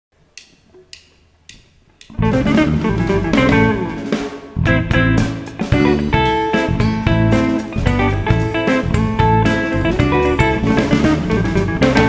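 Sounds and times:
drumsticks clicking together: 0:00.3 - 0:02.2
band playing: 0:02.1 - 0:12.0.

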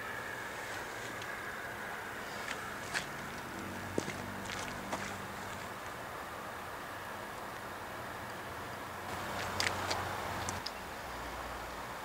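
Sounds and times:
sharp clicks: 0:09.4 - 0:10.8.

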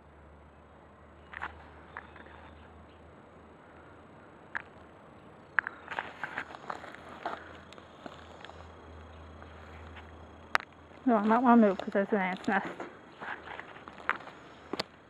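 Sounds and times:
footsteps on dry twigs and leaves: 0:05.4 - 0:14.9.

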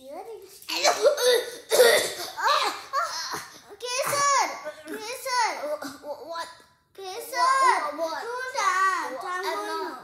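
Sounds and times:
girl coughing: 0:00.7 - 0:06.0.

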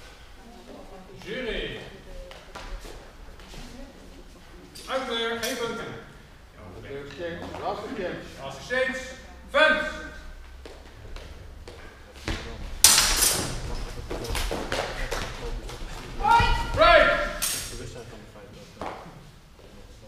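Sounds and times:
swords clashing: 0:12.8 - 0:13.6, 0:17.1 - 0:17.8
loud shouts: 0:16.2 - 0:17.4.

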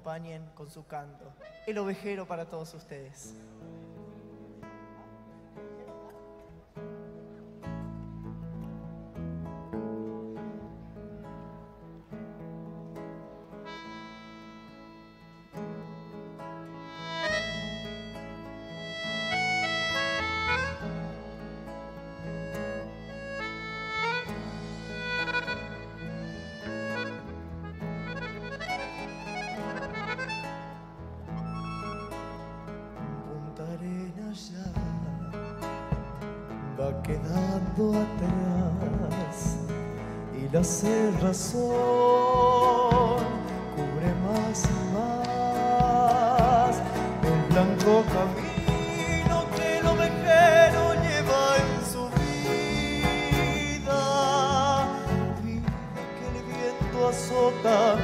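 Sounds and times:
acoustic guitar: 0:00.0 - 0:58.0
accordion melody: 0:01.4 - 0:02.6, 0:06.8 - 0:33.4, 0:34.5 - 0:58.0
bass guitar: 0:15.6 - 0:33.2, 0:34.6 - 0:58.0.

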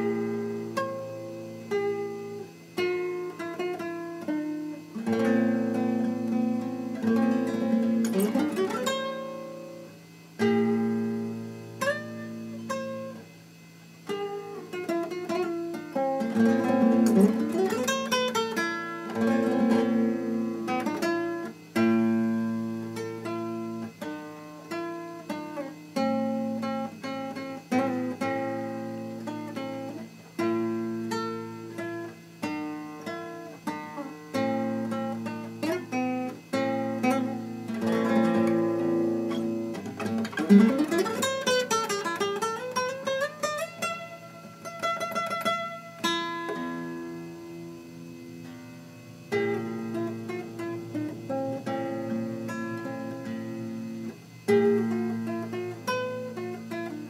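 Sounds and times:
classical guitar fingerstyle: 0:00.0 - 0:57.0.

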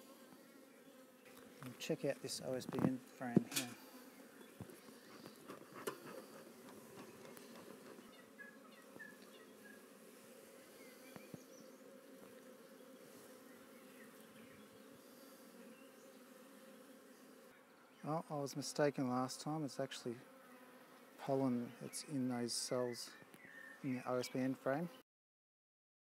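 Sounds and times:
honey bees buzzing: 0:00.0 - 0:25.0.

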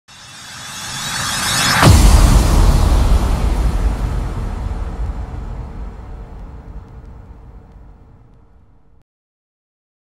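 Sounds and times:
low impact rumble with hiss: 0:01.8 - 0:09.0.

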